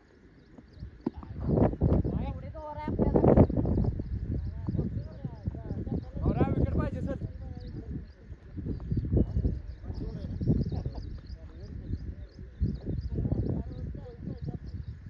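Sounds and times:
distant people talking: 0:01.0 - 0:15.0.

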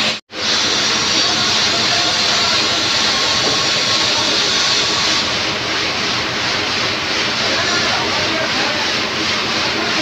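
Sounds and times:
factory machinery rushing hum: 0:00.0 - 0:10.0.

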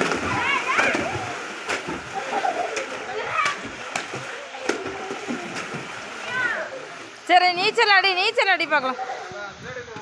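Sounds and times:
water splashing in pool: 0:00.0 - 0:09.3.

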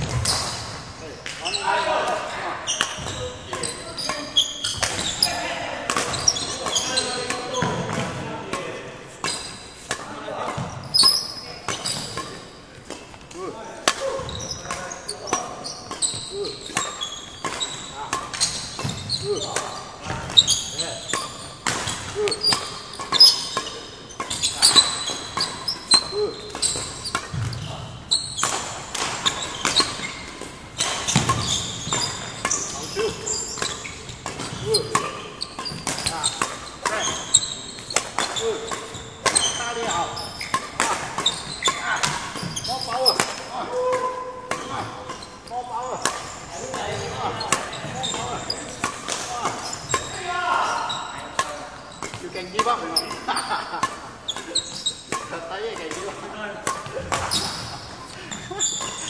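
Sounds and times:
shoes squeaking on wooden floor: 0:00.0 - 0:08.0, 0:09.2 - 0:09.8, 0:10.6 - 0:13.3, 0:14.1 - 0:43.6, 0:44.6 - 0:56.0, 0:56.8 - 0:59.0
rackets hitting shuttlecocks: 0:00.0 - 0:10.8, 0:11.6 - 0:59.0.

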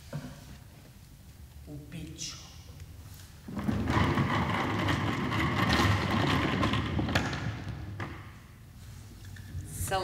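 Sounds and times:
wooden table scraping on floor: 0:03.5 - 0:08.4.

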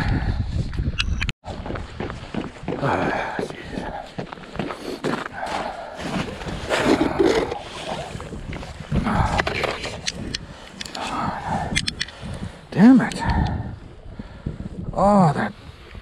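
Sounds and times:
sharp clicks: 0:11.6 - 0:12.2.

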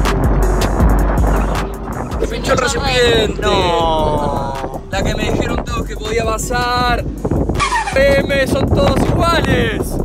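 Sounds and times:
low wind: 0:00.0 - 0:10.0.

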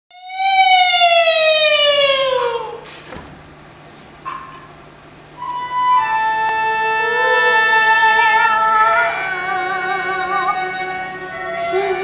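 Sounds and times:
woman singing high note: 0:05.5 - 0:12.0.

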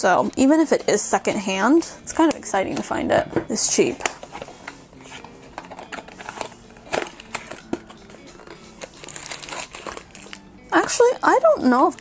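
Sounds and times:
plastic bag crinkling: 0:03.9 - 0:12.0.

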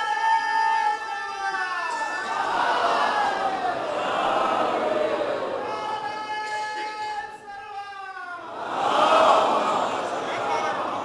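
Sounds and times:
crowd voices: 0:02.0 - 0:07.0, 0:08.5 - 0:11.0.

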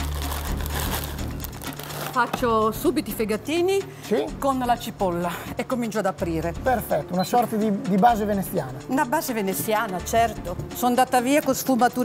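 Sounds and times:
plastic bag crinkling: 0:00.0 - 0:02.4.

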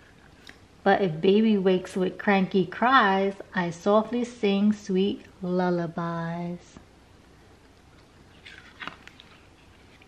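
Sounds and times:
cardboard page turning: 0:08.3 - 0:10.0.

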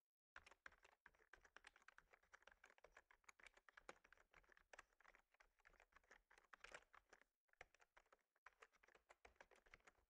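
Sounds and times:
typing on computer keyboard: 0:00.4 - 0:10.0.

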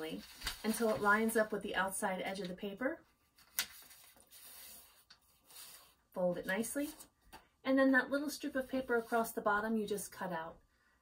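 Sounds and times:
paper rustling: 0:00.0 - 0:01.5, 0:03.2 - 0:07.1
paper crackle: 0:00.1 - 0:01.4, 0:03.4 - 0:06.6.

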